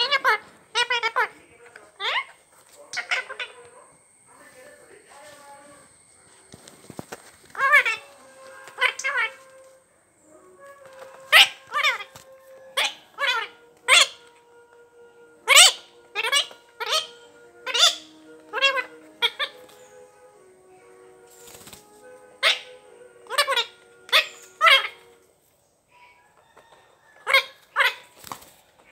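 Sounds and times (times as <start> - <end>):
parakeet calling: 0.0 - 3.9, 7.5 - 9.8, 10.4 - 14.5, 15.2 - 21.3, 22.1 - 25.2
faint held musical notes: 0.0 - 28.9.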